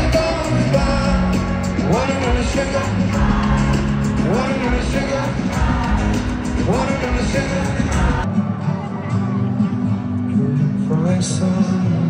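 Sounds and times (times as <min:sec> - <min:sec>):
man singing: 0:00.0 - 0:08.3, 0:10.3 - 0:12.0
pop-rock band playing: 0:00.0 - 0:10.2
stadium crowd: 0:00.0 - 0:12.0.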